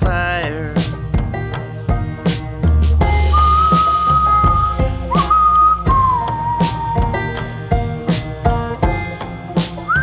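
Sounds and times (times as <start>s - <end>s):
bass: 0.0s - 10.0s
drum beat: 0.0s - 10.0s
whistled melody: 3.0s - 8.0s, 9.7s - 10.0s.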